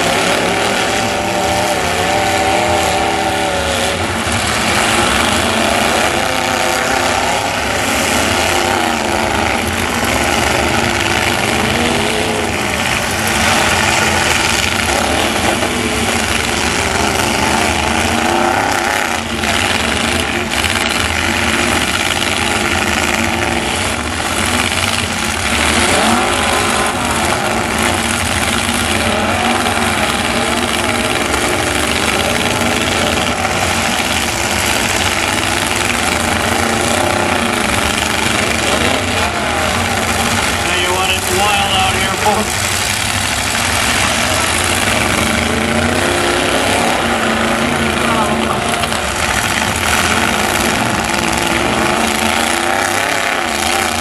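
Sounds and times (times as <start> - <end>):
truck engines revving: 0.0 - 54.0.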